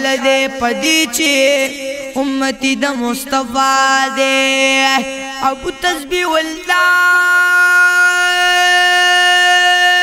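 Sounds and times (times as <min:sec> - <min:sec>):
young man singing long note: 0:00.0 - 0:10.0.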